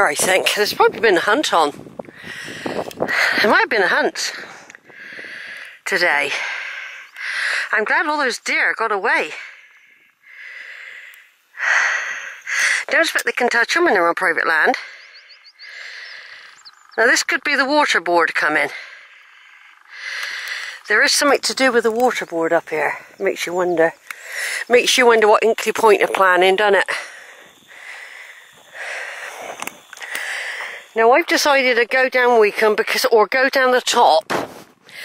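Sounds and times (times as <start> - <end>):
person breathing: 2.1 - 3.5, 4.3 - 7.7, 9.3 - 12.9, 14.8 - 16.7, 18.6 - 20.8, 24.0 - 24.7, 26.9 - 31.0
faint clicks: 11.0 - 11.3, 19.2 - 22.3, 26.9 - 31.4
small bird chirping: 14.8 - 17.6, 19.1 - 32.1
soft steady hiss: 18.7 - 33.4.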